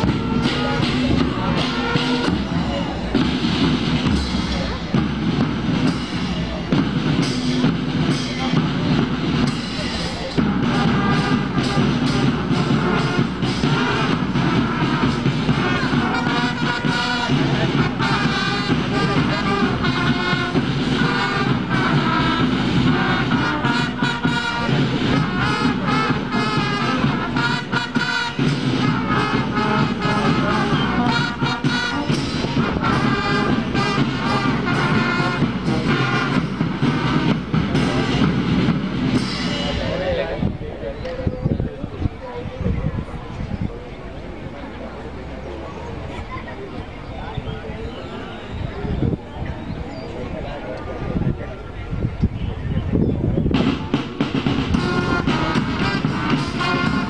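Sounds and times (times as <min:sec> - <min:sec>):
trumpets and saxophone melody: 0:00.0 - 0:40.1, 0:53.6 - 0:57.0
marching drums: 0:00.0 - 0:40.9, 0:52.8 - 0:57.0.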